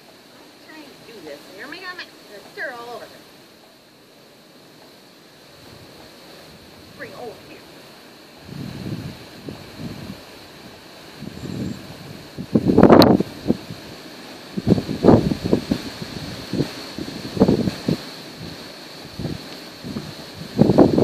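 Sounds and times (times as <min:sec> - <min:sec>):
wind buffeting microphone: 0:04.4 - 0:21.0.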